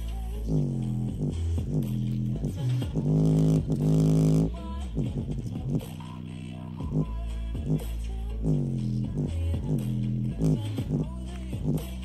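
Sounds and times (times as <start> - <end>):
bass-heavy music through speaker: 0.0 - 12.0
speaker radiator pumping: 0.0 - 12.0.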